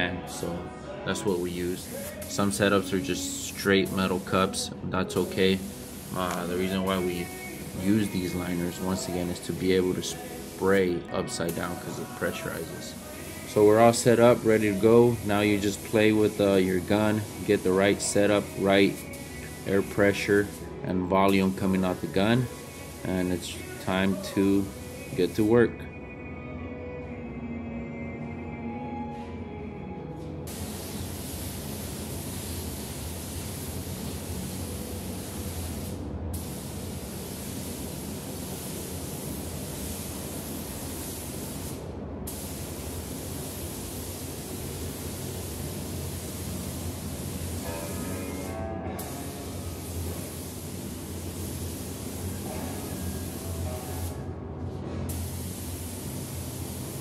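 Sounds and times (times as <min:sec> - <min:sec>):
background music: 0:00.0 - 0:38.8, 0:45.1 - 0:57.0
spray gun hissing: 0:01.1 - 0:25.6, 0:30.5 - 0:54.2, 0:55.1 - 0:57.0.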